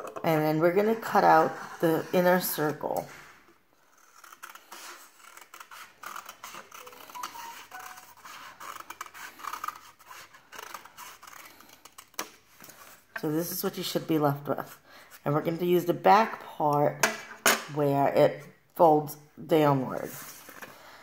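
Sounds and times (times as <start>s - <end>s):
stiff paper rustling: 4.3s - 13.1s.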